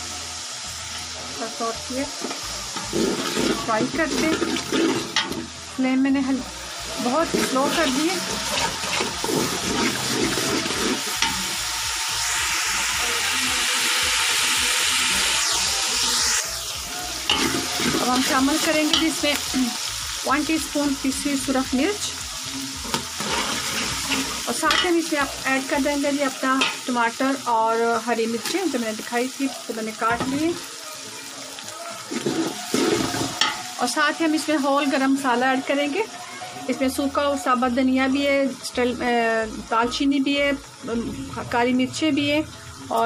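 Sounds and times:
onions sizzling in a pan: 0:00.0 - 0:43.0
spatula stirring in a pan: 0:02.2 - 0:05.5, 0:07.0 - 0:11.6, 0:16.2 - 0:19.4, 0:22.8 - 0:25.1, 0:32.0 - 0:33.8
spoon stirring in steel pot: 0:07.2 - 0:11.4.

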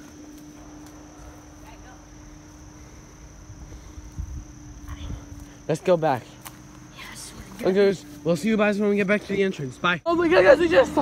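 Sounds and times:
walking through undergrowth: 0:00.0 - 0:09.8
insects droning: 0:00.0 - 0:11.0.

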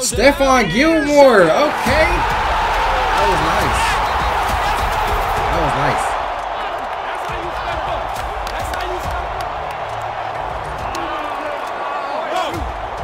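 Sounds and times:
background music: 0:00.0 - 0:13.0
players shouting: 0:00.0 - 0:13.0
stadium crowd noise: 0:00.0 - 0:13.0.

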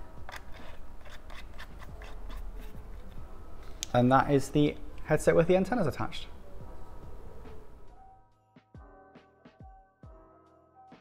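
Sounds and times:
antenna clicking and rubbing: 0:00.2 - 0:04.0.

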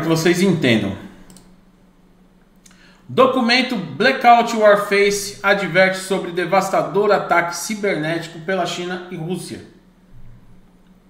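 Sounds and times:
faint computer mouse clicks: 0:01.3 - 0:01.5.

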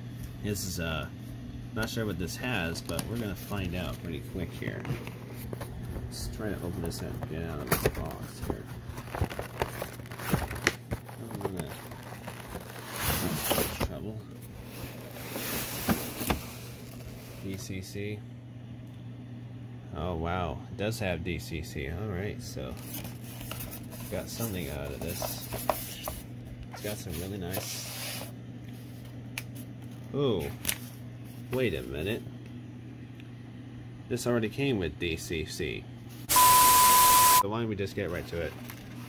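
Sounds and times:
steady low hum: 0:00.0 - 0:39.0
plastic packaging tray rustling: 0:03.1 - 0:17.3
packaging rustle: 0:06.8 - 0:14.0, 0:38.0 - 0:39.0.

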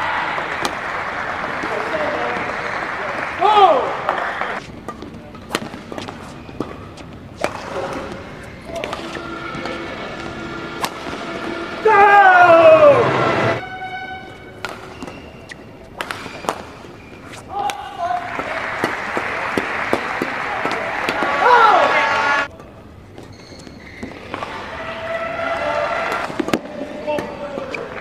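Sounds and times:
crowd noise and shouting: 0:00.0 - 0:04.7, 0:07.7 - 0:15.1, 0:17.4 - 0:22.5, 0:24.0 - 0:28.0
rackets hitting shuttlecock: 0:00.0 - 0:24.8, 0:25.4 - 0:28.0
shoe squeaks on court: 0:05.9 - 0:09.8, 0:14.0 - 0:17.5, 0:23.2 - 0:24.4.

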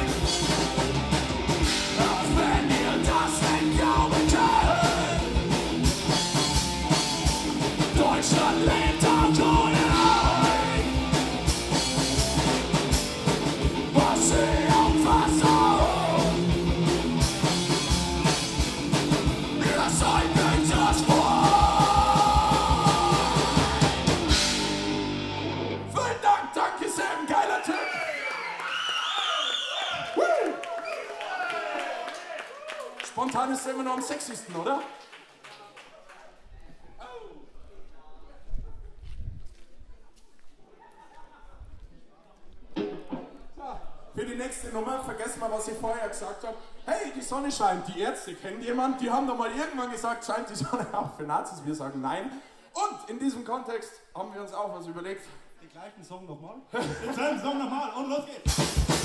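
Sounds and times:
pounding drum kit: 0:00.0 - 0:25.7, 0:58.4 - 0:59.0
distorted electric guitar: 0:00.0 - 0:26.0
bass guitar: 0:00.0 - 0:26.2, 0:58.5 - 0:59.0
crowd shouting and cheering: 0:00.0 - 0:34.8
shouted vocals: 0:02.0 - 0:05.4, 0:07.8 - 0:11.4, 0:13.8 - 0:16.6, 0:19.5 - 0:24.4, 0:25.8 - 0:33.0.

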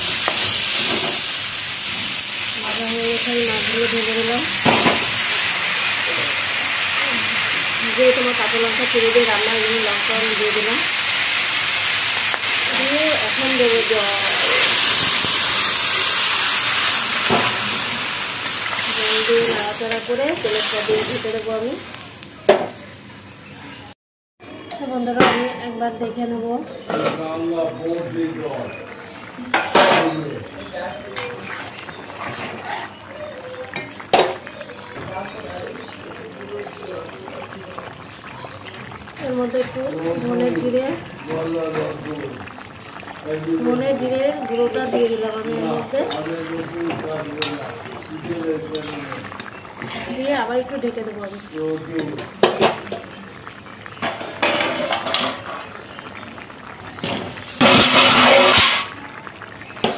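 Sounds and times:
curry bubbling at a rolling boil: 0:00.0 - 0:23.9, 0:24.7 - 0:59.9
fish frying in hot oil: 0:00.0 - 0:23.9, 0:26.9 - 0:59.9.

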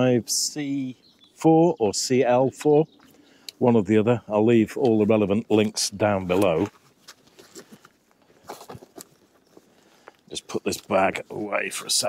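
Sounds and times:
faint handling noise: 0:04.6 - 0:11.8.

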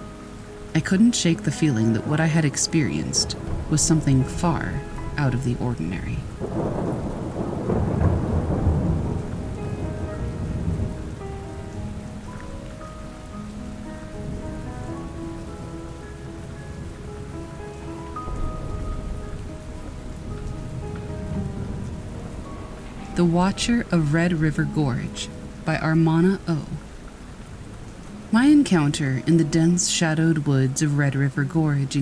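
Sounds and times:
soft music notes: 0:00.0 - 0:32.0
steady rain: 0:00.0 - 0:32.0
thunder rolling: 0:02.8 - 0:12.4, 0:16.4 - 0:25.2.

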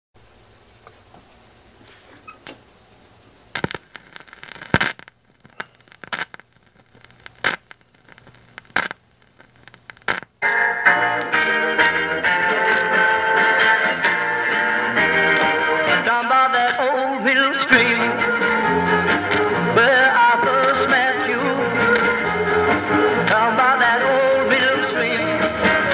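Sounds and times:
vinyl clicks and pops: 0:03.5 - 0:25.9
vinyl surface crackle: 0:03.5 - 0:25.9
rockabilly guitar intro: 0:10.4 - 0:25.9.

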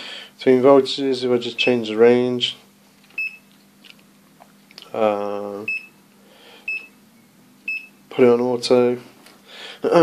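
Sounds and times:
multimeter short high beeps: 0:03.2 - 0:03.5, 0:05.7 - 0:06.0, 0:06.7 - 0:07.0, 0:07.7 - 0:08.0.

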